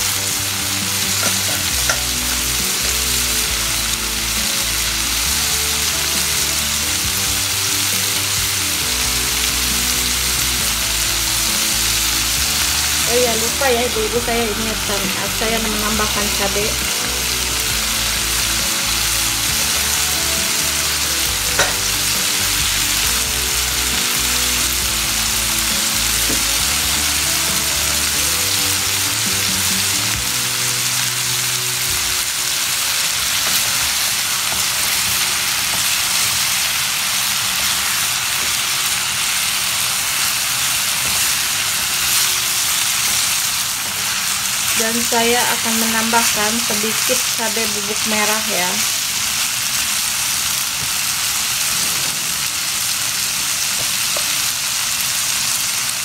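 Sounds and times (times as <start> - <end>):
food sizzling in a frying pan: 0.0 - 56.0.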